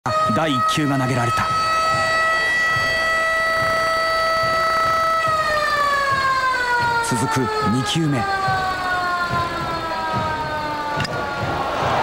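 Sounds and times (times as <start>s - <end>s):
siren wailing: 0.1s - 12.0s.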